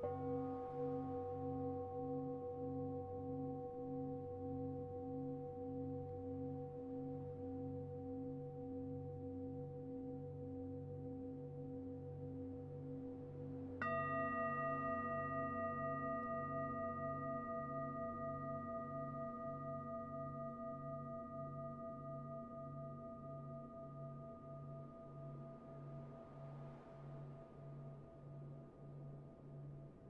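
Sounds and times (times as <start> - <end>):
singing bowl ringing: 13.8 - 26.0.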